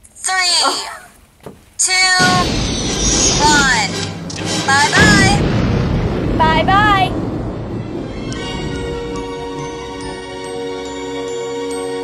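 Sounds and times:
high voice counting down: 0:01.8 - 0:02.5
loud rushing blast: 0:02.2 - 0:10.4.

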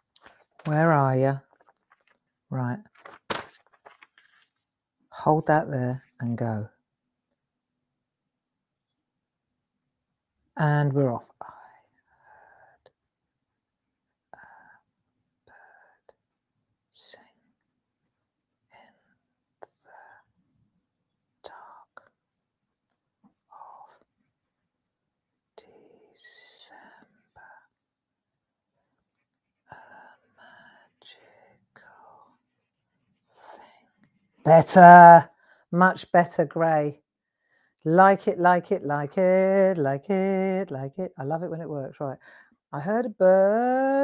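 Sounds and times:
woman whispering: 0:10.6 - 0:11.9, 0:15.5 - 0:16.2, 0:17.0 - 0:17.4, 0:21.4 - 0:22.2, 0:23.5 - 0:24.1, 0:25.6 - 0:27.7, 0:29.7 - 0:32.4, 0:42.8 - 0:44.0.

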